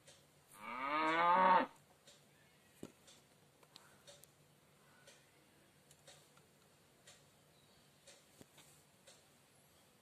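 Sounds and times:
cow mooing: 0.6 - 1.8.

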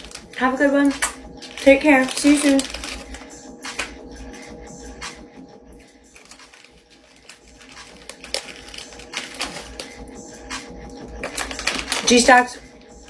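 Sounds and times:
snack bag crinkling: 0.0 - 4.0, 5.8 - 12.6.

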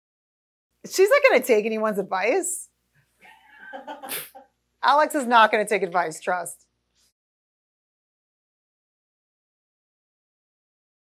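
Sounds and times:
woman laughing softly: 3.2 - 4.5.

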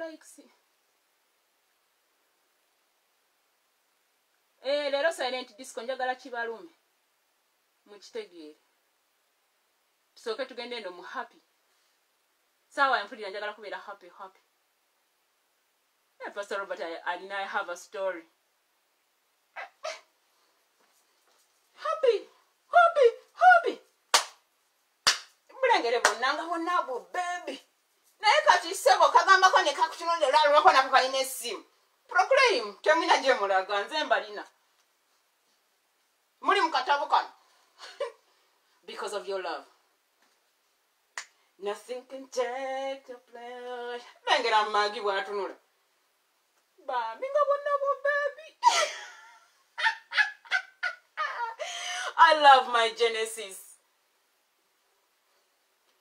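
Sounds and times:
sharp hand claps: 24.1 - 24.4, 25.0 - 25.4
woman laughing: 37.8 - 38.2, 48.6 - 52.2.

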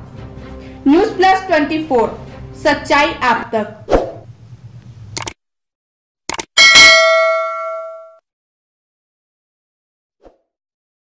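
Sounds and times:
quick double click: 6.3 - 6.5
bright bell ding: 6.6 - 8.2.

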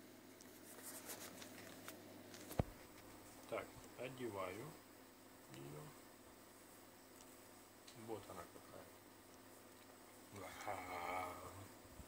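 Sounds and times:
faint rustling: 0.4 - 4.1.

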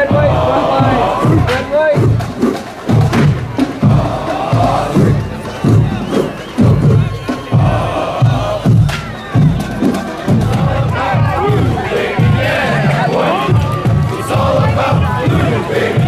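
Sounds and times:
band members shouting and chanting: 0.0 - 16.0
steady drum beat: 0.0 - 16.0.

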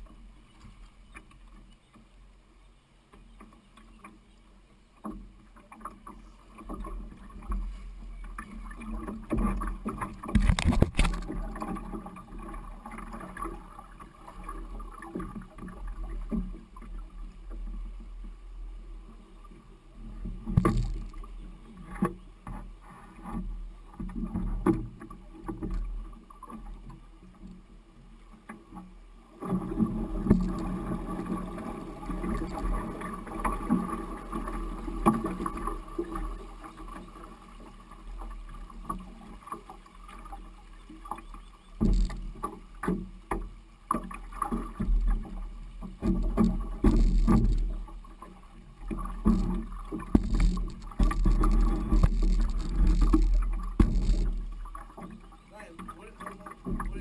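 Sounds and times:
water moving: 3.0 - 57.0
canoe hull scraping over stones: 6.1 - 15.4, 20.3 - 23.4, 41.2 - 57.0.

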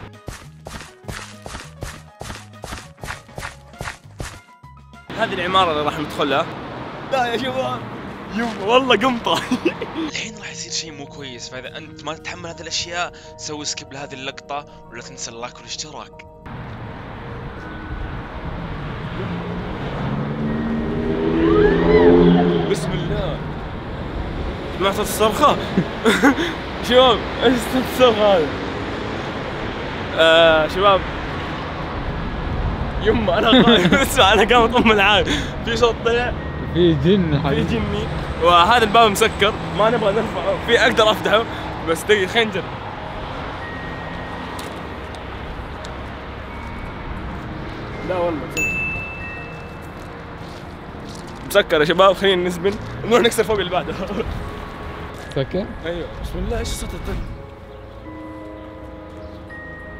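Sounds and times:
street noise: 0.0 - 59.9
steady outdoor background noise: 5.0 - 59.9
motor vehicle passing: 16.5 - 59.9
faint high wavering cry: 21.3 - 22.9.

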